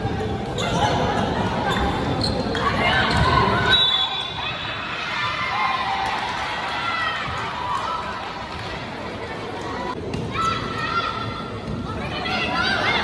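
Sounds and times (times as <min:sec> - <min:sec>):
spectators shouting and cheering: 0:02.6 - 0:13.0.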